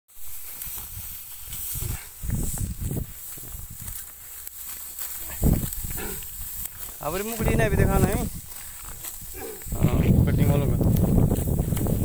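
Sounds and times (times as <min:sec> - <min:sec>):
dry wheat stalks rustling: 0:00.1 - 0:12.0
steady high hiss: 0:00.1 - 0:12.0.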